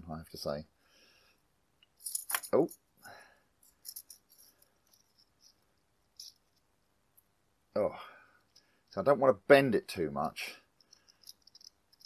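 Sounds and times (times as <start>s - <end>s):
small metal clicks and rattles: 1.8s - 2.8s, 3.6s - 6.7s, 10.8s - 12.0s.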